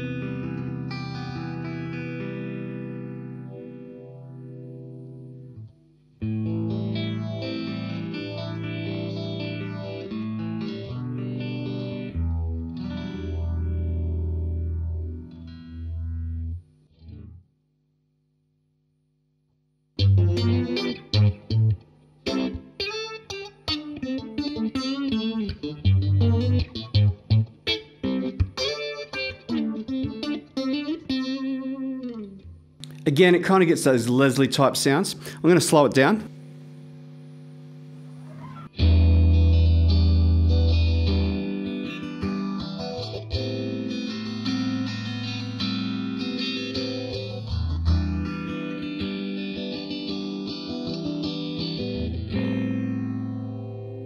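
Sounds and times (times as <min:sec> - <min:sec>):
phased electric guitar: 0:20.0 - 0:54.0.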